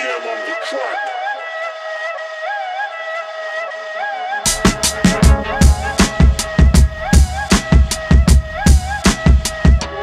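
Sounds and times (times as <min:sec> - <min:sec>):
flute melody: 0:01.0 - 0:10.0.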